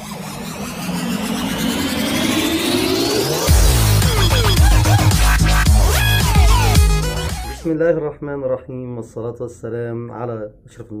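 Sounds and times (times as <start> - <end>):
synthesized rising swell: 0.0 - 7.7.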